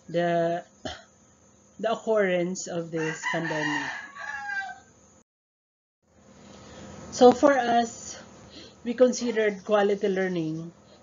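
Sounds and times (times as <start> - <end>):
rooster crowing: 3.0 - 5.0.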